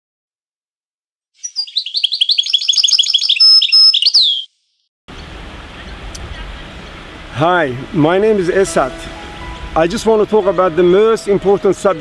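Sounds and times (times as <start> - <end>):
songbird chirping and trilling: 1.4 - 7.1, 8.7 - 11.2
outdoor background noise: 5.1 - 12.0.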